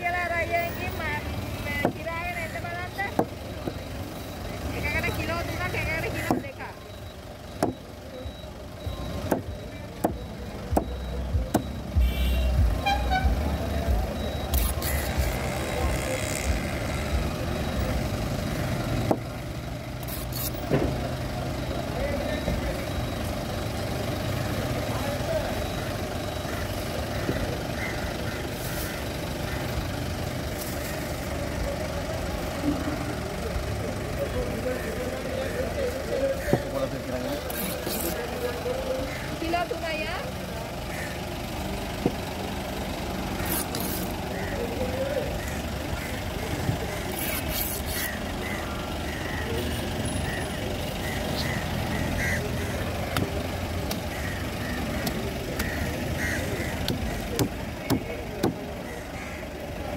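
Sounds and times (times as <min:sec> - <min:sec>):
street traffic hum: 0:00.0 - 0:59.9.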